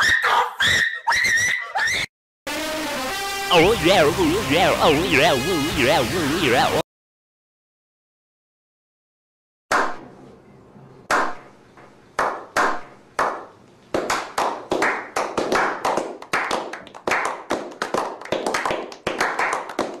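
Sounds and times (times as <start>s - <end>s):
slow hand claps: 14.0s - 20.0s
scattered applause: 15.3s - 20.0s.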